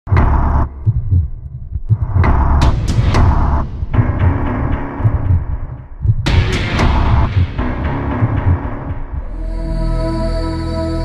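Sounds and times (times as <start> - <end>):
deep low thumps: 0.1 - 9.6.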